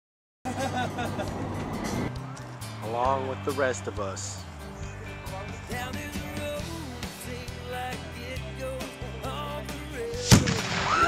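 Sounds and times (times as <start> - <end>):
explosive bang: 10.2 - 11.0.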